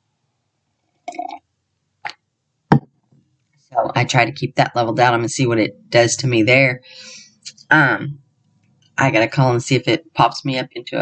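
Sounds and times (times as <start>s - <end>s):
person gulping a drink: 1.0s - 1.4s.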